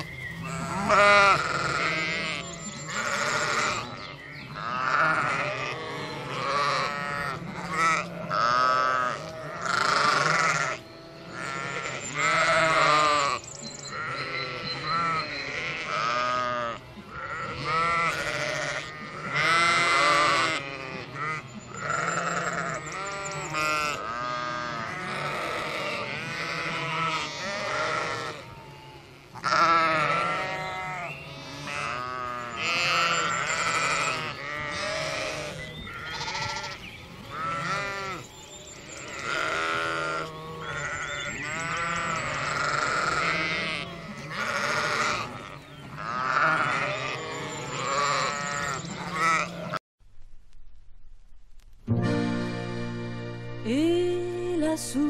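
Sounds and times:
sheep bleating: 0.0s - 49.8s.

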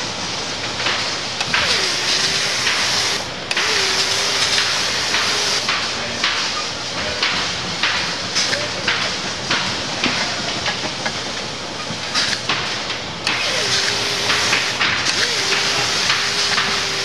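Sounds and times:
factory machinery hiss: 0.0s - 17.0s
pneumatic fastening gun firing: 1.4s - 5.9s, 12.2s - 12.5s, 13.2s - 17.0s.

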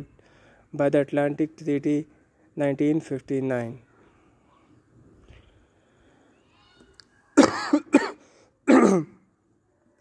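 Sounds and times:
man coughing: 7.4s - 9.2s.

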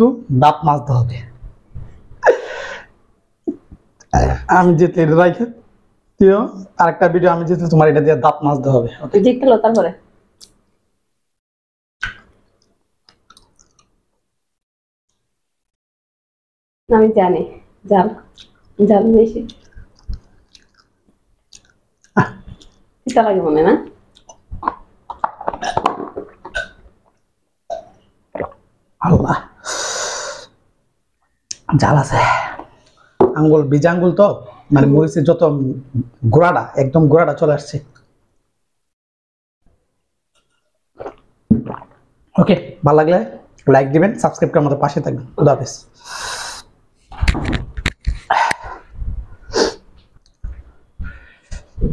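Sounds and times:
person gulping water: 13.1s - 13.9s, 19.5s - 22.8s, 24.2s - 28.7s, 41.0s - 42.1s
short sharp breathy burst: 46.0s - 46.7s.

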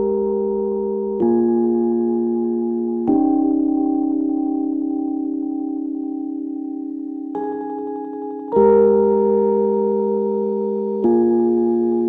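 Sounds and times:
soft sustained ringing tone: 3.1s - 12.0s.

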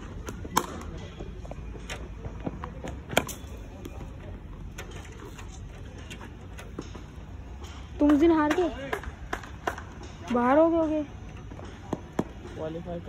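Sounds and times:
outdoor background noise: 0.0s - 13.0s
sharp crack of cricket ball: 0.2s - 0.9s.

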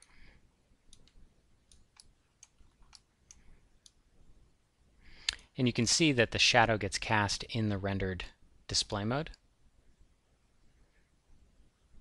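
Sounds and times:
computer mouse clicks: 0.9s - 4.0s.

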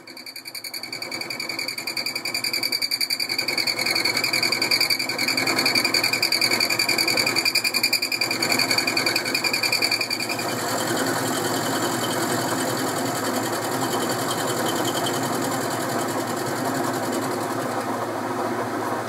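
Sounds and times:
end mill cutting metal: 0.3s - 18.1s.

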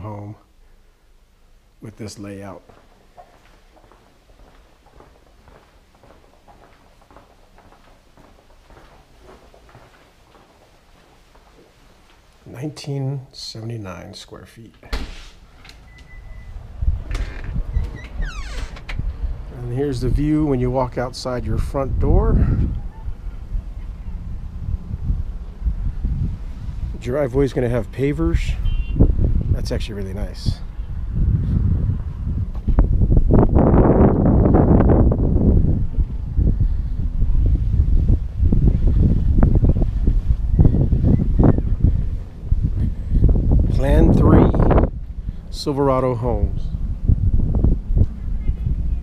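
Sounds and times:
wind buffeting microphone: 15.0s - 49.0s.

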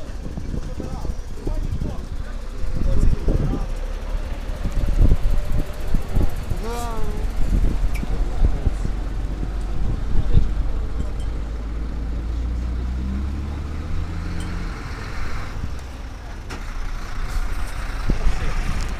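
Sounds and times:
vehicle engine rumbling: 0.0s - 18.9s.

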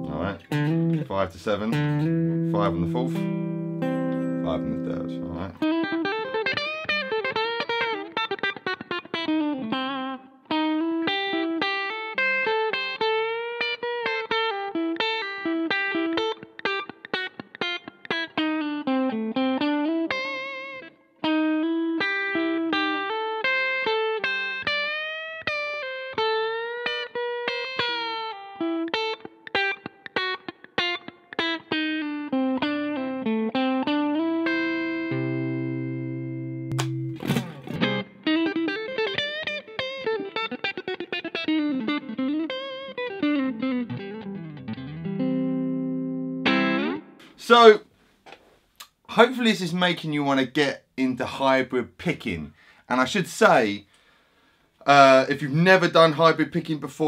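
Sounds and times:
electric guitar fast lick: 36.7s - 38.7s, 46.4s - 47.4s.

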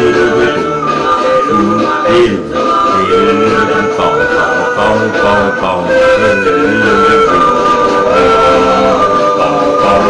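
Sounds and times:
music with singing: 0.0s - 10.0s.

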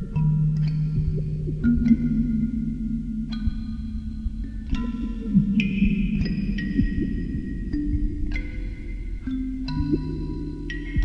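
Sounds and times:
low steady drone: 0.0s - 11.0s
processed marimba strikes: 0.0s - 11.0s.

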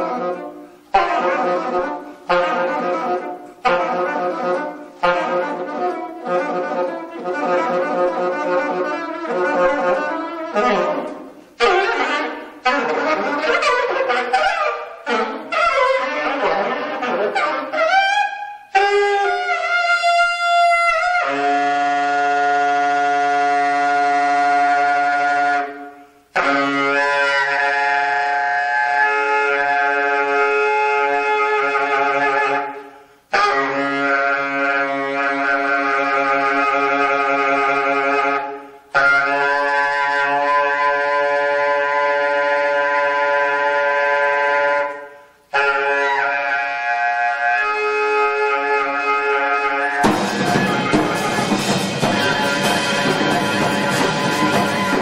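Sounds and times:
saxophone long held notes: 0.0s - 55.0s.

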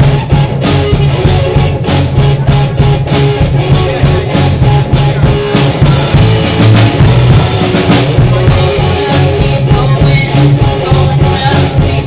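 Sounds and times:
drum kit hits: 0.0s - 12.0s
rock band playing: 0.0s - 12.0s.

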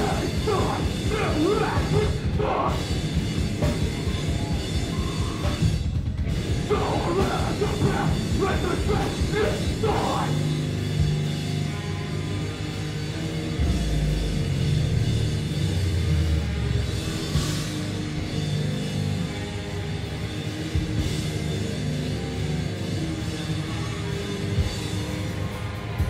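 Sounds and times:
bass guitar: 0.0s - 26.0s
drum kit: 0.0s - 26.0s
electric guitars: 0.0s - 26.0s.

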